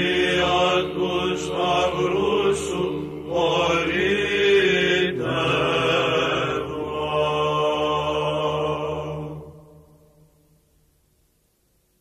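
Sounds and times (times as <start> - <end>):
voices chanting sustained notes: 0.0 - 10.6.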